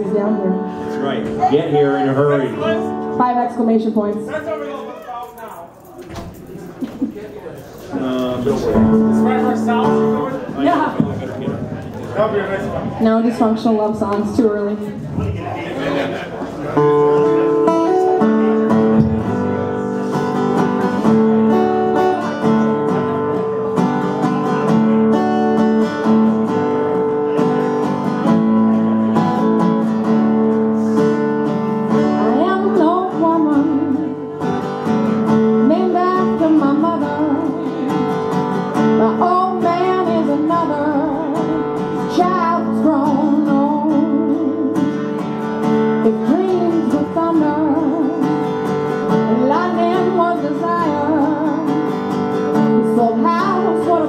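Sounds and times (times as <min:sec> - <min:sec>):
acoustic guitar strumming: 0:00.0 - 0:05.3, 0:07.9 - 0:15.5, 0:16.6 - 0:54.0
person singing: 0:30.6 - 0:34.5, 0:35.5 - 0:45.1, 0:46.0 - 0:52.0, 0:52.6 - 0:54.0.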